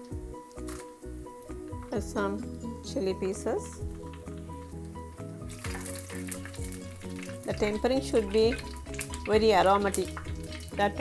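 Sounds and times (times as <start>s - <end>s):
background music: 0.0s - 11.0s
hot oil sizzling and crackling: 3.1s - 11.0s.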